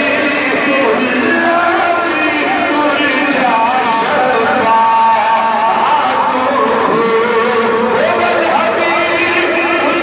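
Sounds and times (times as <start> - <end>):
devotional chanting: 0.0 - 10.0.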